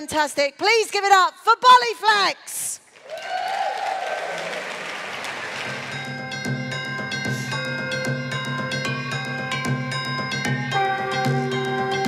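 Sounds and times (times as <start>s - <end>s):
audience applause: 2.9s - 6.2s
dance music with drum beat: 5.7s - 12.0s.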